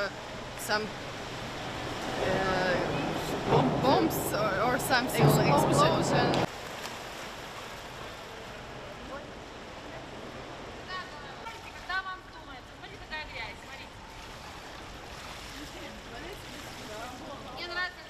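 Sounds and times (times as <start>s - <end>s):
water wash and hall noise: 0.0s - 18.0s
indistinct voices: 2.1s - 6.5s.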